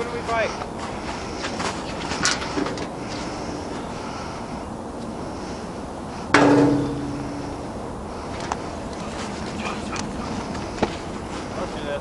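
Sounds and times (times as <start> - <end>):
faint outdoor background: 0.0 - 12.0
sharp knock: 6.4 - 7.8
low ringing tone: 6.4 - 8.0.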